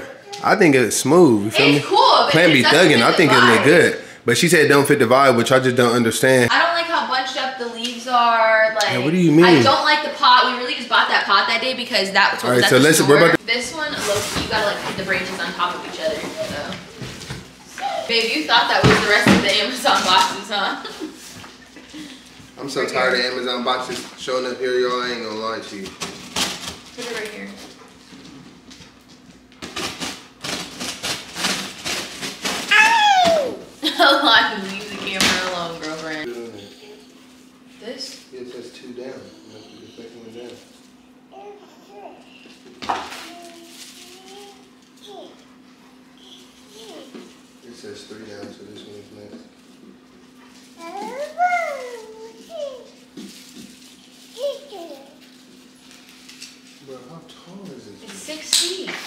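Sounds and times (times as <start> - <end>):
cardboard and plastic rustling: 13.8 - 21.6, 25.7 - 36.3, 42.6 - 45.3, 48.3 - 58.4
artificial branches rustling: 43.1 - 45.3, 50.5 - 56.9.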